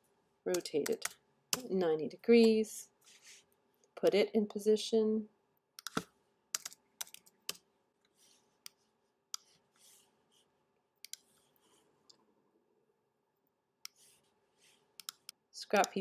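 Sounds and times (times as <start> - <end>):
faint soft rustles: 3.0 - 3.6
mouse and keyboard clicks: 5.8 - 7.6, 15.0 - 16.0.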